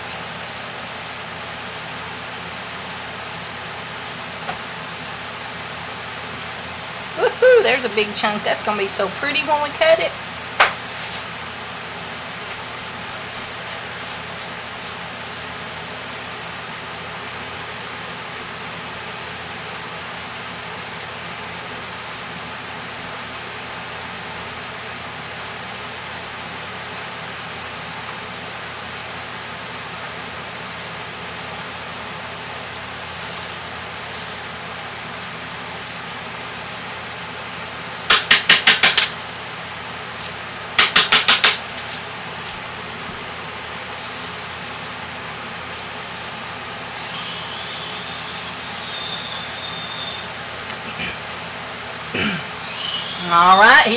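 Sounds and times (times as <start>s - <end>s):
fan-like background noise: 0.0s - 53.9s.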